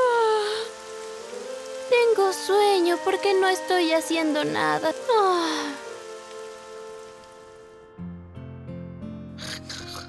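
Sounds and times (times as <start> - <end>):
rain patter: 0.0 - 7.8.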